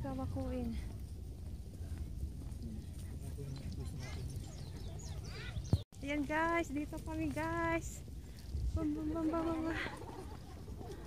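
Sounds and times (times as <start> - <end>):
footsteps on paved path: 0.0 - 11.0
low microphone rumble: 0.0 - 11.0
faint voices: 1.9 - 5.8.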